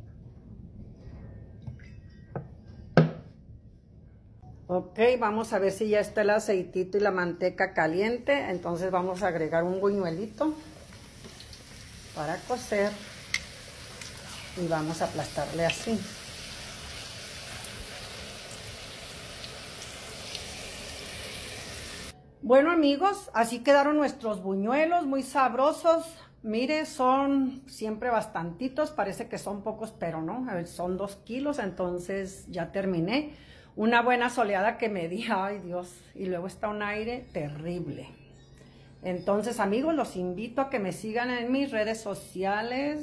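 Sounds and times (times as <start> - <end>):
oil pouring into skillet: 10.8 - 14.6, 15.4 - 22.1.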